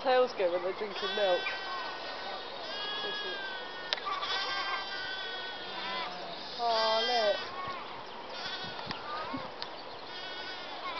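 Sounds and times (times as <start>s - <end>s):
sheep bleating: 0.8s - 7.8s, 8.4s - 9.3s, 10.1s - 10.9s.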